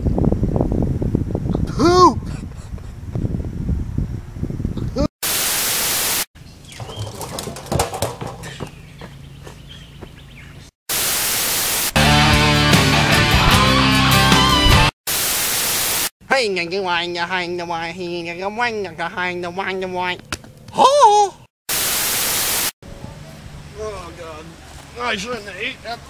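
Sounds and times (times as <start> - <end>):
tv static hiss: 5.2 - 6.3, 10.9 - 12.0, 15.1 - 16.1, 21.7 - 22.7
music: 12.0 - 14.9.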